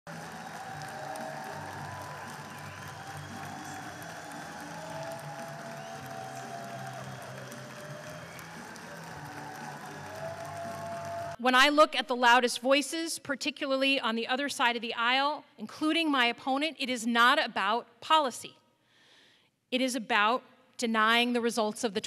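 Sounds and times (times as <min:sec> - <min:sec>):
audience applauding: 0:00.0 - 0:11.4
music over speakers: 0:00.1 - 0:11.4.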